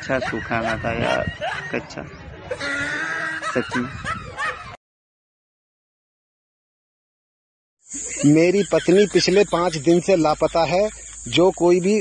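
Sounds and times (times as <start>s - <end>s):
man chuckling: 3.3s - 4.8s.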